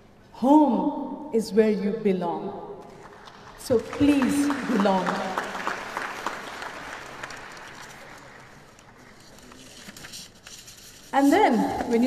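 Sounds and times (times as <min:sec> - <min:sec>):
audience applauding: 0:03.0 - 0:09.2.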